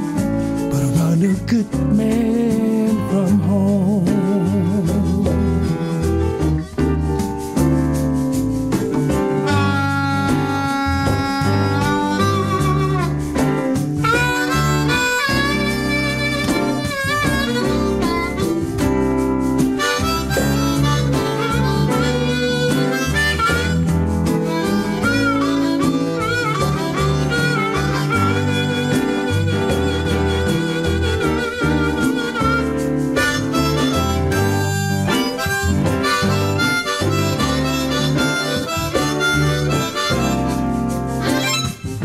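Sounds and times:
blues harmonica solo: 0.0s - 3.0s, 4.0s - 42.0s
band backing with bass guitar piano: 0.0s - 42.0s.

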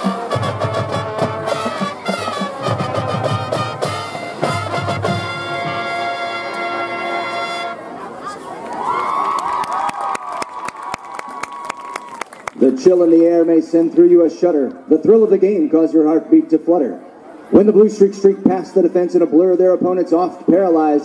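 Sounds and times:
marching band playing: 0.0s - 8.0s
crowd cheering and clapping: 8.2s - 12.8s.

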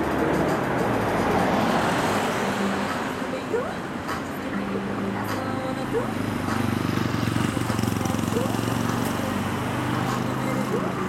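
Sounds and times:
road vehicle passing by: 0.0s - 11.0s.

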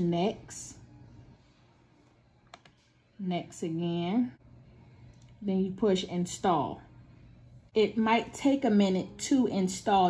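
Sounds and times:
computer mouse click: 2.5s - 2.8s.

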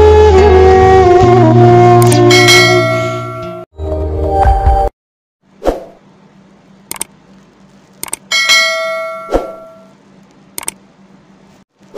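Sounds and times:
faint steady hum: 6.0s - 11.9s
mouse clicks: 6.9s - 7.1s, 10.6s - 10.8s.

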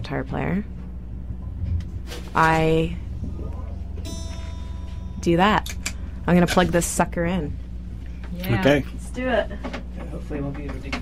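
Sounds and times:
low electrical hum: 0.0s - 11.0s
guitar string plucked and ringing: 2.7s - 8.1s.

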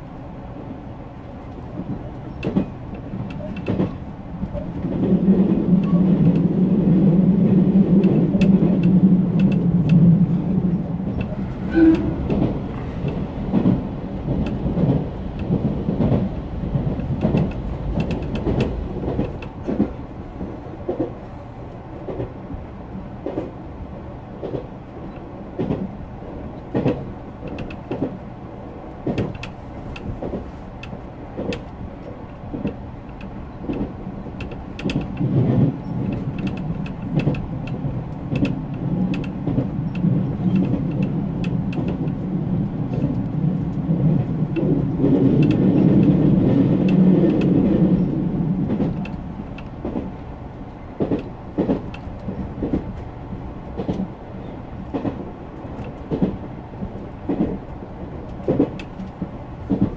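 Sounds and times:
train rumbling at speed: 0.0s - 59.9s
wheels clicking on track: 7.4s - 20.0s, 29.0s - 50.2s.

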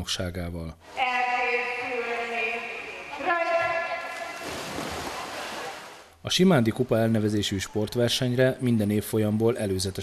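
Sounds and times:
swimmers diving and splashing: 3.5s - 7.3s.

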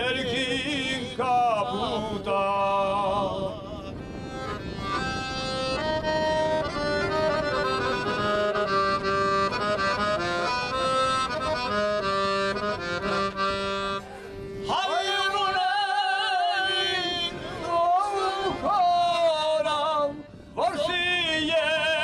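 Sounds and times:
man singing: 0.0s - 4.0s, 14.6s - 22.0s
accordion playing a melody: 3.3s - 22.0s.

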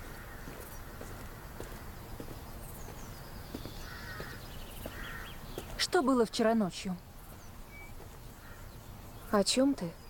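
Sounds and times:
footsteps on stone path: 0.0s - 8.8s
faint bird chirps: 0.2s - 10.0s.

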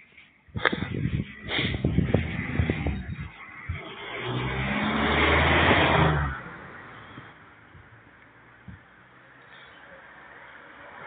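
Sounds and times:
car passing by: 1.3s - 7.6s, 9.3s - 11.0s.

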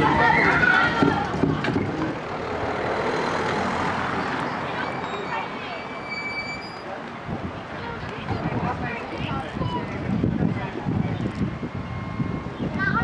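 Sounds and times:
voices in background: 3.8s - 13.0s.

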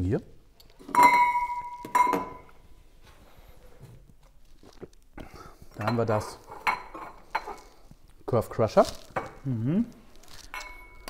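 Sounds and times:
drinking glass clinking: 0.8s - 2.5s, 5.7s - 7.7s, 10.5s - 11.0s.

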